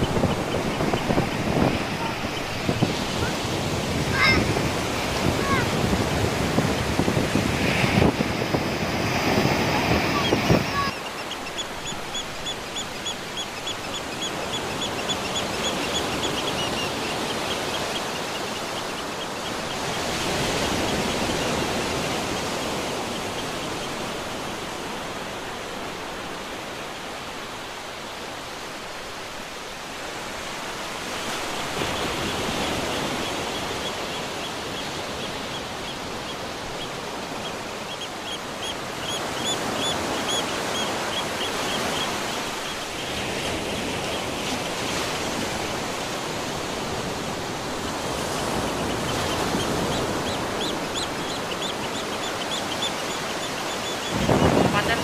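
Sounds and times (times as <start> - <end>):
ocean surf washing up beach: 0.0 - 55.0.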